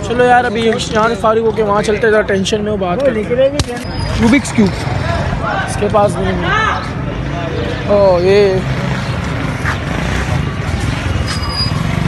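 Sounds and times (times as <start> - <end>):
low street background rumble: 0.0 - 12.0.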